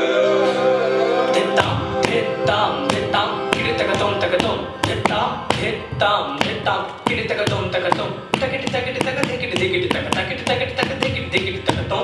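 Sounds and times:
held pitched tones: 0:00.0 - 0:11.6.

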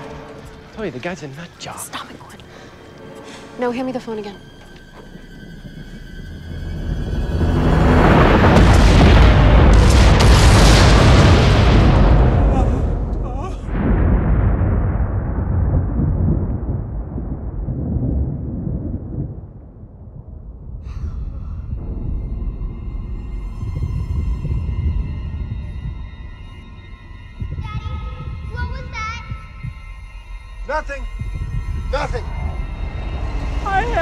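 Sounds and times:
low rumble: 0:03.7 - 0:34.0
volcano eruption rumbling blast: 0:06.9 - 0:26.0.

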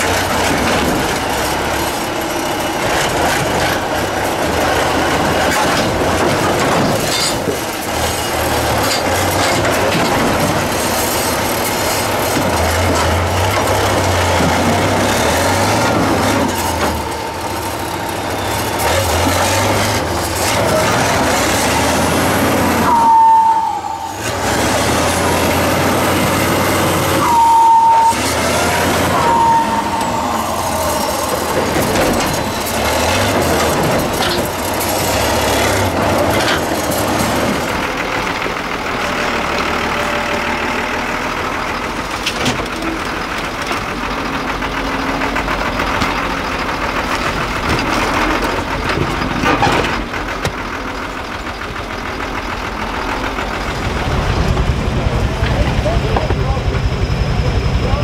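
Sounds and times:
diesel truck engine labouring: 0:00.0 - 0:58.0
high-pitched squeal: 0:10.8 - 0:37.7.

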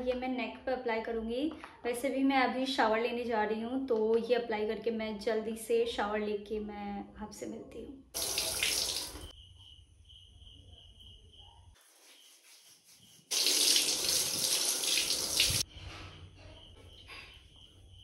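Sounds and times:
shower water splashing: 0:08.2 - 0:09.3, 0:12.0 - 0:15.6.

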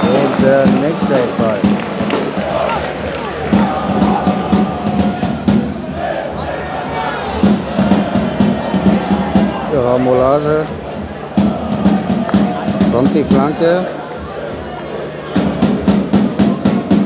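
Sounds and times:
football supporters chanting: 0:00.0 - 0:17.0.

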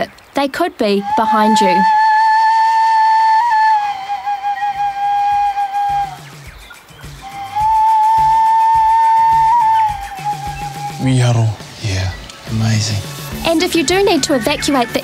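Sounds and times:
flute-like long high notes: 0:01.0 - 0:06.3, 0:07.2 - 0:11.6.

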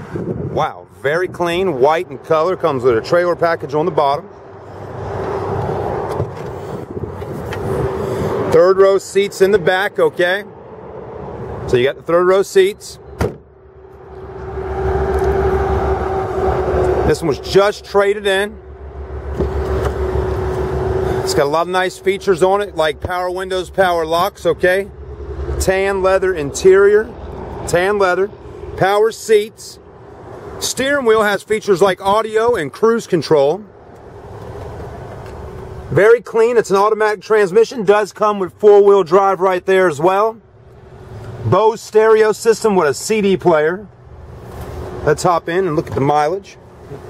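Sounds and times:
vehicle hum: 0:00.0 - 0:47.0
low rushing noise: 0:13.4 - 0:28.8.

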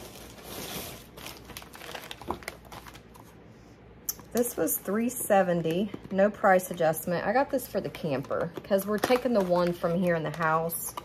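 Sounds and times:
packaging crinkling: 0:00.0 - 0:03.4, 0:08.8 - 0:11.0.

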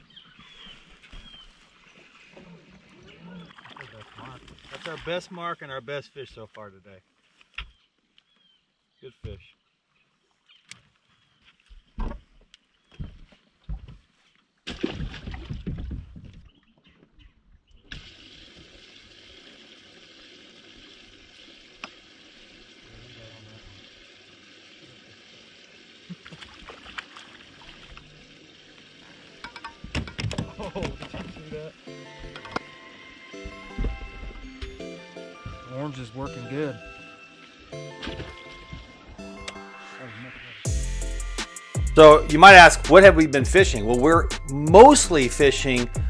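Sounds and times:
background music: 0:29.3 - 0:46.0.

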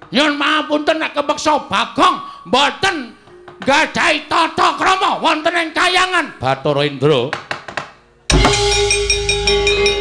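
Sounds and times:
metallophone and gong tones: 0:03.0 - 0:04.9, 0:08.3 - 0:10.0
sharp knocks and drum strokes: 0:03.2 - 0:04.0, 0:07.3 - 0:10.0.

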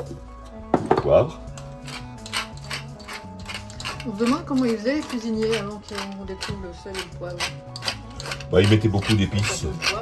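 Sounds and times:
pepper mill grinding clicks: 0:01.5 - 0:09.9.

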